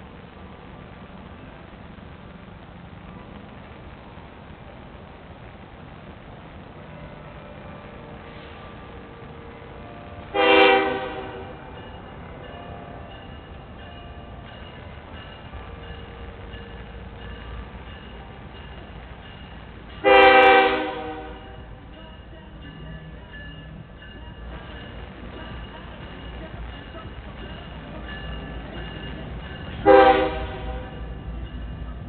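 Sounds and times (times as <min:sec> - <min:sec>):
approaching train rumble: 0:00.0 - 0:32.0
locomotive air horn blasts: 0:09.8 - 0:11.7, 0:20.0 - 0:21.6, 0:29.8 - 0:31.1.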